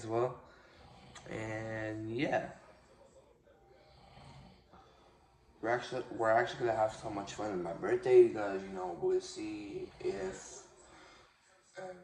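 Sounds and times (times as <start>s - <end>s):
faint breathing: 0.4s - 1.5s, 2.5s - 6.2s, 8.9s - 12.0s.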